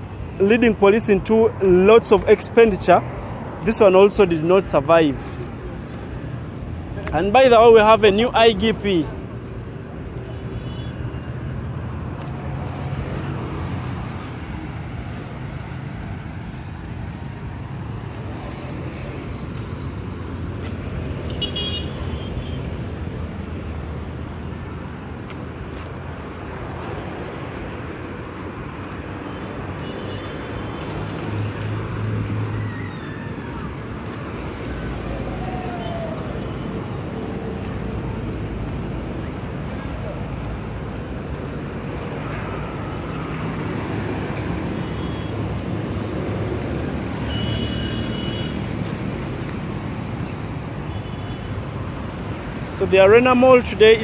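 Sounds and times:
cars and motorcycles passing: 0.0s - 54.0s.

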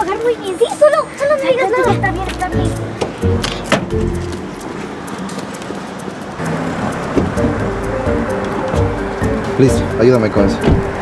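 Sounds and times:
background music: 0.0s - 5.4s, 6.4s - 11.0s
car rear hatch shutting: 6.5s - 7.6s, 10.5s - 11.0s.

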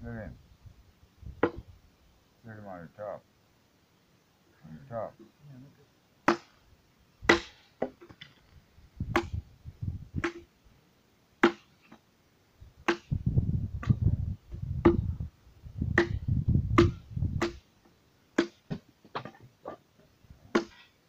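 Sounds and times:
axe chopping wooden log: 6.3s - 6.6s, 7.3s - 8.0s, 10.2s - 10.5s, 11.4s - 11.7s, 12.9s - 13.2s, 16.0s - 16.2s, 16.8s - 17.6s, 18.4s - 19.4s, 20.5s - 20.9s.

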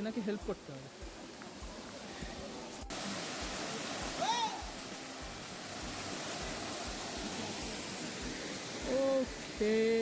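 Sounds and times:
waterfall rushing into pool: 0.0s - 10.0s.

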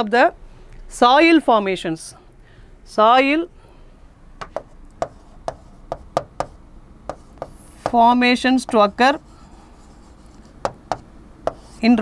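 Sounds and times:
pen tapping on board: 4.4s - 8.0s, 10.4s - 11.8s.

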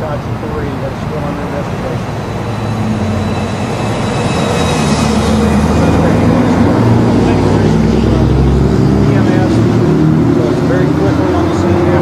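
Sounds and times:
vehicle engine droning: 0.0s - 12.0s.

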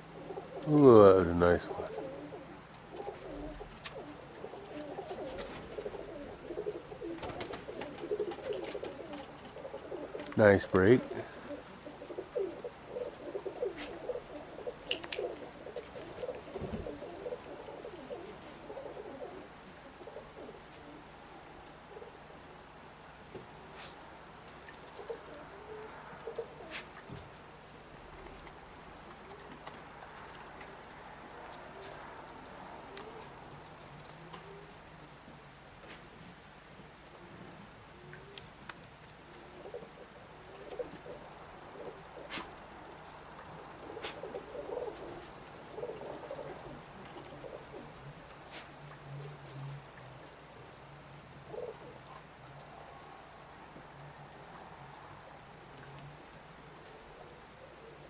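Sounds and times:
pigeons cooing: 0.0s - 58.0s
faint sharp clicks: 14.8s - 16.3s, 38.1s - 39.4s.

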